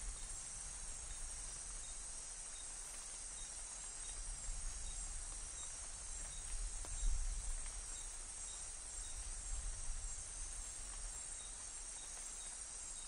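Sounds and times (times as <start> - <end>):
insects chorus: 0.0 - 13.0.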